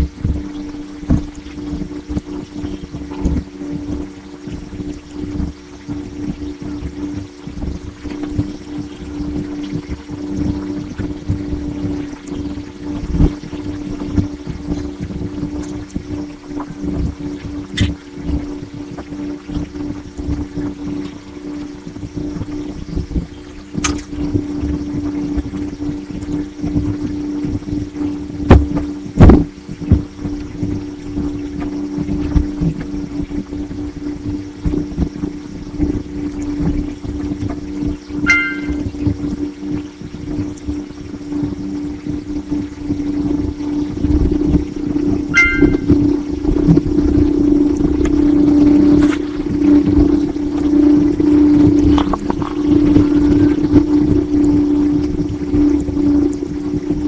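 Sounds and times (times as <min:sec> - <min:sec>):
steady low hum: 0:00.0 - 0:57.0
short high tones: 0:38.3 - 0:38.9, 0:45.4 - 0:46.0.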